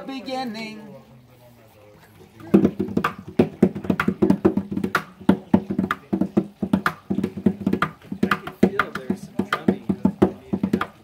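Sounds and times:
hand drum strikes: 0:02.4 - 0:11.0.

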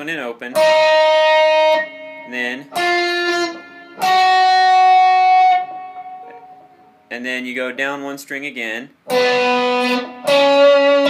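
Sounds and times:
guitar picked notes: 0:00.5 - 0:07.2, 0:09.0 - 0:11.0.

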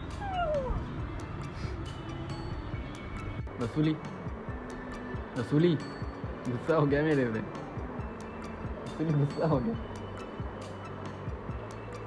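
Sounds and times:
dog whining: 0:00.0 - 0:01.0
background music: 0:00.0 - 0:12.0.

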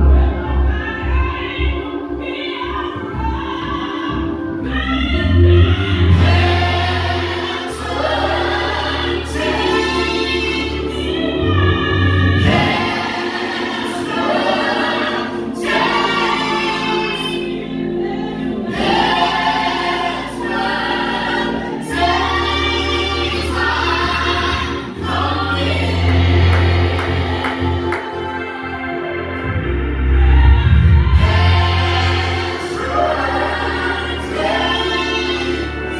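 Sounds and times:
deep bass: 0:00.0 - 0:10.0, 0:22.1 - 0:27.9, 0:29.3 - 0:34.7
gospel choir singing: 0:00.0 - 0:35.9.

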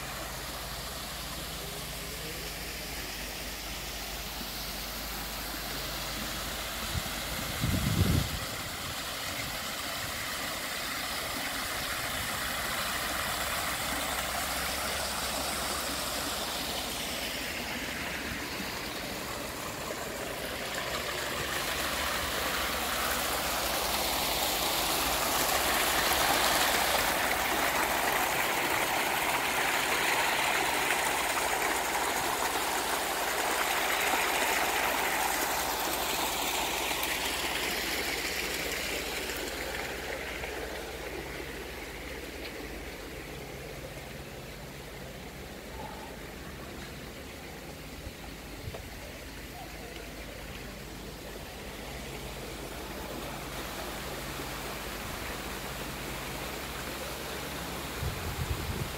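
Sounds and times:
water running over stones: 0:00.0 - 0:58.9.

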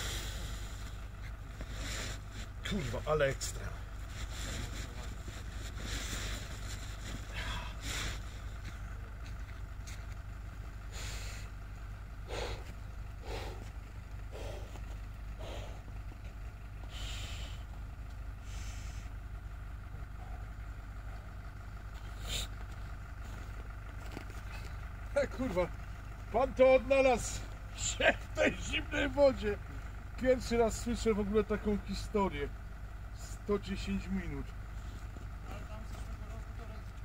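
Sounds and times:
low outdoor rumble: 0:00.0 - 0:37.0
distant voices talking: 0:19.4 - 0:37.0.

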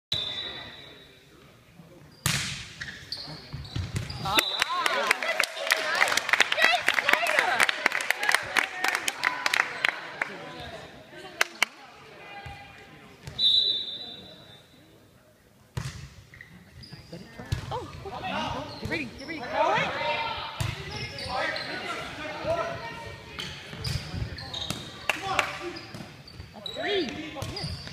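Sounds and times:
sneaker squeaks: 0:02.1 - 0:04.6, 0:16.3 - 0:17.3, 0:18.3 - 0:19.8, 0:20.6 - 0:27.9
players' voices echoing: 0:03.2 - 0:15.6, 0:17.2 - 0:27.9.

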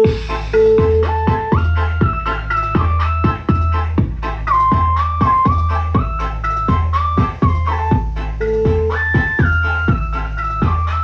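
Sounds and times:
flute-like lead melody: 0:00.0 - 0:11.0
heavy bass beat: 0:00.0 - 0:11.0.

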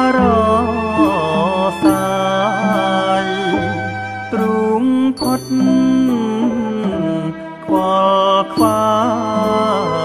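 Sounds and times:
instrumental accompaniment: 0:00.0 - 0:10.0
person singing long held notes: 0:00.0 - 0:10.0.

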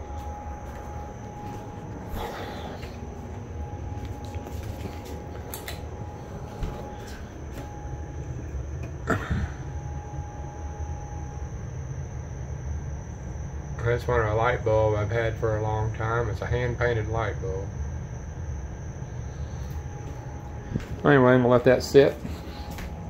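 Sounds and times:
faint high whine: 0:00.0 - 0:23.0
low indoor hum: 0:00.0 - 0:23.0.

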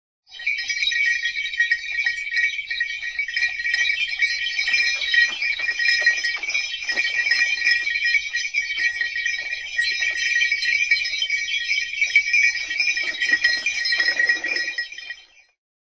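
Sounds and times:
sled harness bells jingling: 0:00.3 - 0:15.6.

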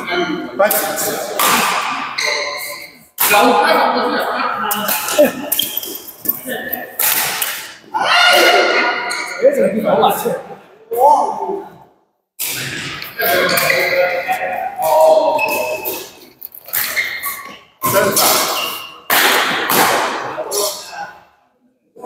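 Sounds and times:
voices: 0:00.0 - 0:11.8, 0:12.4 - 0:21.3
shuttlecock hits echoing: 0:00.7 - 0:03.6, 0:06.7 - 0:07.8, 0:17.8 - 0:20.5.

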